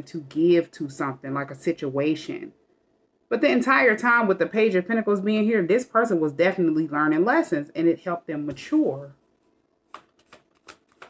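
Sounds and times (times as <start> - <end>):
cards being shuffled: 9.4 - 11.0.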